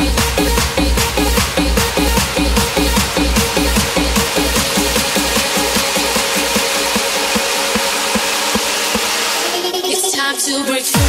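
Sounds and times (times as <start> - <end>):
noisy synth wash: 0.0 - 10.3
electronic dance music: 0.0 - 11.0.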